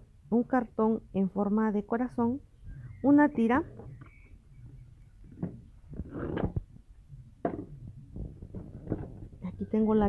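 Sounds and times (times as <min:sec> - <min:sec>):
low steady hum: 0:00.0 - 0:10.0
objects knocking and rustling: 0:05.2 - 0:06.8, 0:07.4 - 0:09.7.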